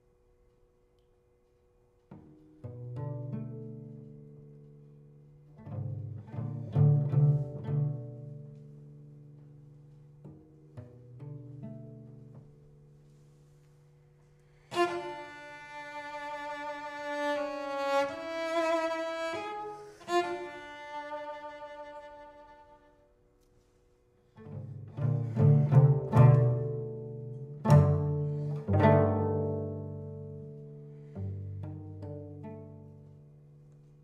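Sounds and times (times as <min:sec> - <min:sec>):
plucked cello notes: 0:01.9 - 0:34.0
bowed cello phrase: 0:05.4 - 0:13.8, 0:14.4 - 0:33.6.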